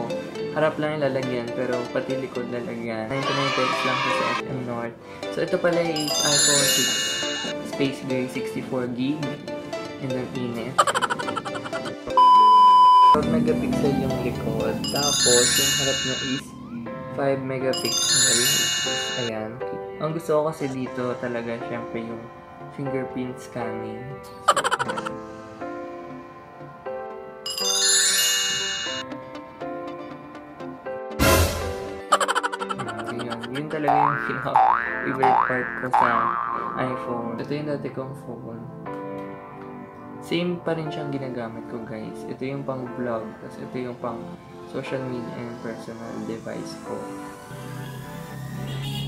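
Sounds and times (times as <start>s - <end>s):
background music: 0.0s - 49.0s
test-tone beep: 12.1s - 13.2s
rising boing-like slide: 33.9s - 37.0s.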